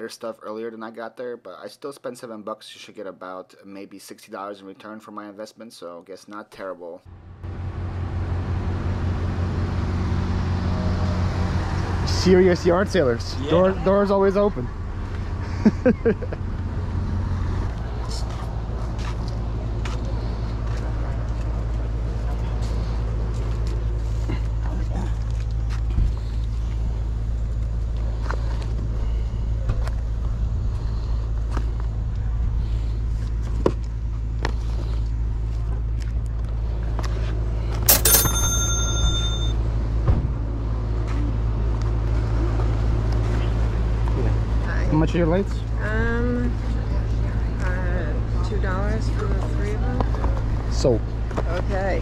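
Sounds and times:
sharp ringing knock: 37.9 - 39.6.

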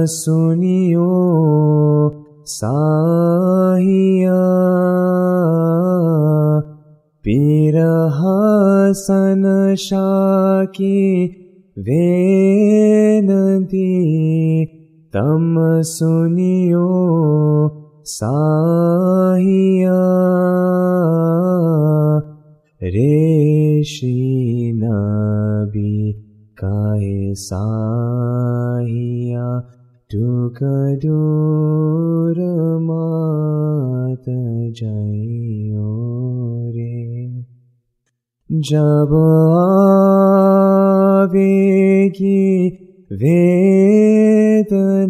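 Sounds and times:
man singing unaccompanied: 0.0 - 37.4, 38.5 - 45.0
man chanting: 0.0 - 37.5, 38.5 - 45.0.

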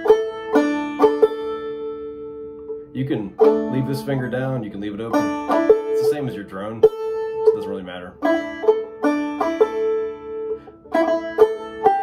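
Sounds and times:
banjo notes plucked: 0.0 - 12.0.

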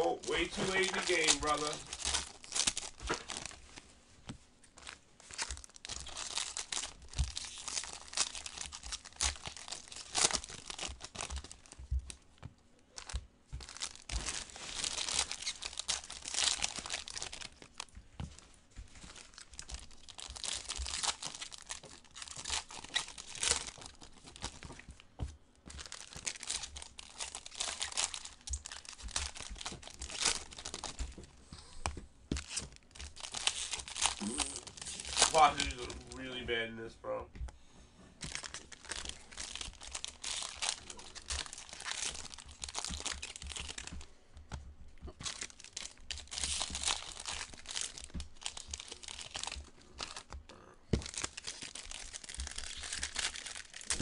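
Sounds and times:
foil wrappers tearing and crinkling: 0.0 - 3.8, 4.7 - 12.2, 12.9 - 18.0, 19.0 - 25.0, 25.7 - 31.2, 32.3 - 36.6, 38.2 - 44.0, 45.1 - 54.0.

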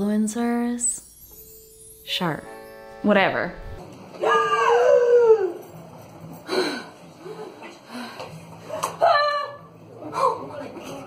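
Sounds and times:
woman wailing: 4.2 - 5.6, 9.0 - 10.4.

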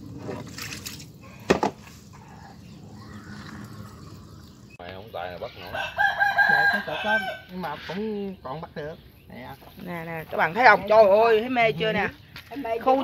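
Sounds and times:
rooster crowing: 5.6 - 7.7.

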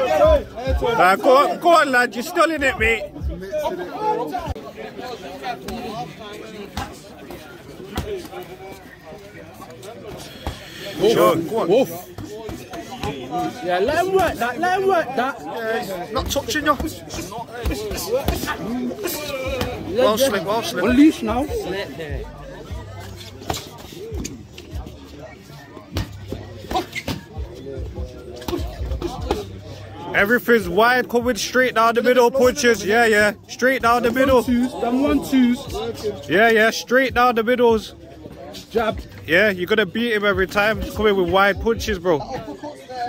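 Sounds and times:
low crowd chatter: 0.0 - 43.0.

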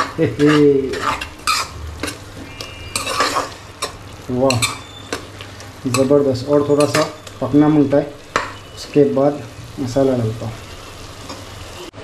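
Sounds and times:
metal spoon scraping a steel pan: 0.0 - 5.3, 5.9 - 7.4
food sizzling: 0.0 - 12.0.

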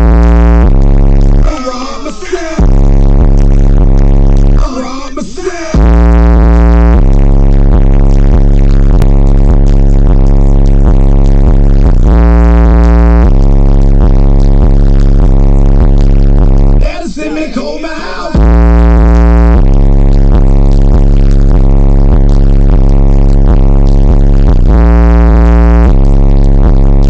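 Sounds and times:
loud bass-heavy music: 0.0 - 27.0
short vocal line: 1.4 - 2.8, 4.6 - 6.0, 16.8 - 18.6.

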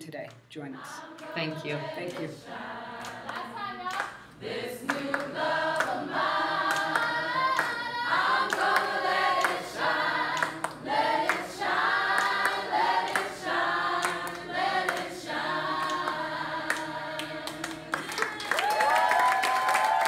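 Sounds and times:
group singing unaccompanied: 0.6 - 18.6
hand claps: 3.0 - 4.2, 4.8 - 9.6, 10.3 - 11.5, 12.1 - 13.4, 14.0 - 20.0.

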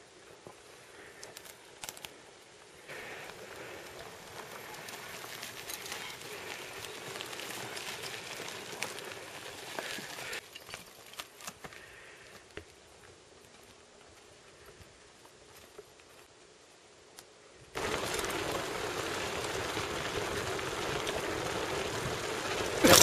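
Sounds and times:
bike tyres crunching over stones: 0.2 - 16.3, 17.7 - 23.0.

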